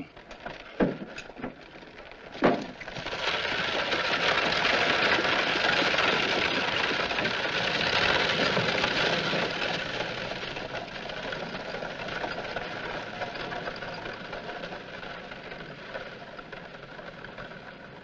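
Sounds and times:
horse hooves clattering: 0:00.0 - 0:18.0
carriage wheels clattering: 0:00.1 - 0:18.0.

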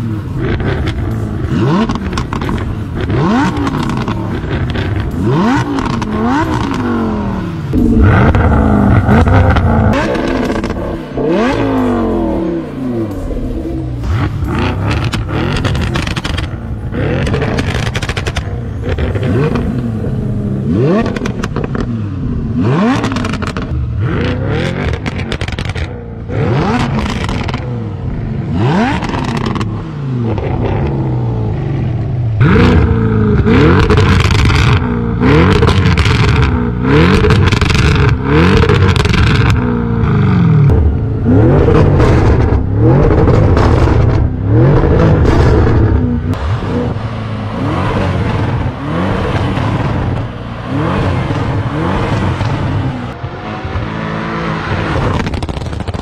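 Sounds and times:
car engines revving: 0:00.0 - 0:56.0.

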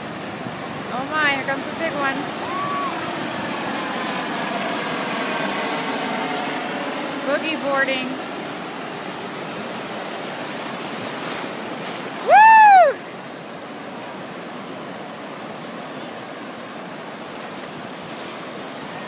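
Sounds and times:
ocean surf breaking on shore: 0:00.0 - 0:19.0
loud high rising and falling call: 0:02.2 - 0:07.3.

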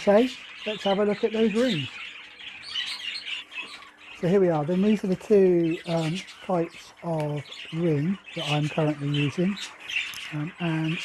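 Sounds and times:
cage birds chirping: 0:00.0 - 0:11.0.

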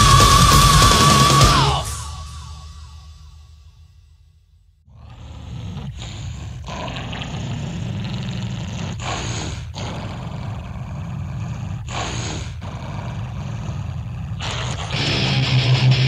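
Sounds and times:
heavy metal guitar riff: 0:00.0 - 0:02.6, 0:14.9 - 0:16.0
distorted roaring noise: 0:00.0 - 0:03.3, 0:14.9 - 0:16.0
low drone: 0:00.0 - 0:04.1, 0:14.9 - 0:16.0.

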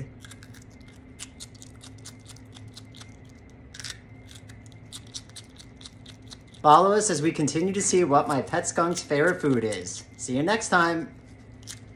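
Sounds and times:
skunk crunching bell pepper: 0:00.0 - 0:11.9.

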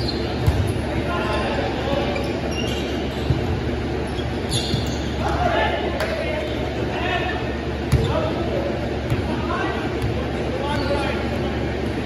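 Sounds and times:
low hum of hall: 0:00.0 - 0:12.0.

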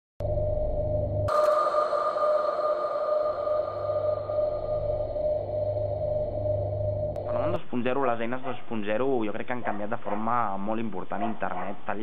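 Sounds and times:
sustained synthesizer tones: 0:00.2 - 0:07.6
low hum: 0:00.2 - 0:07.7.

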